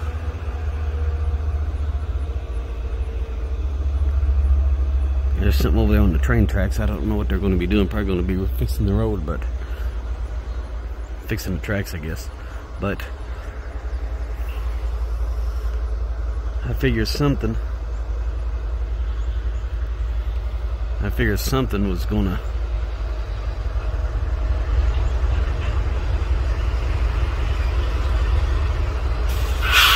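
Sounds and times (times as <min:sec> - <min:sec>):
vehicle engine rumbling: 0:00.0 - 0:29.9.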